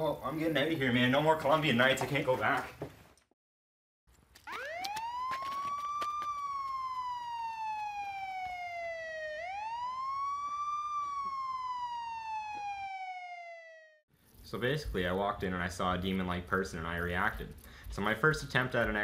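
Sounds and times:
sharp clicks: 4.2 - 6.8
emergency vehicle siren wailing: 4.4 - 14.0.

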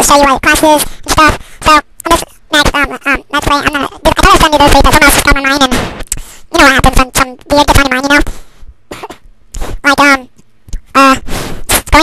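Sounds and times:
person speaking haltingly: 0.0 - 5.7, 6.5 - 8.3
person coughing: 8.9 - 9.3.

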